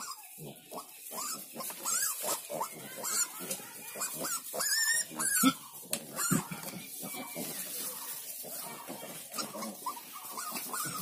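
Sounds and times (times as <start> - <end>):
piglets squealing and grunting: 0.0 - 11.0.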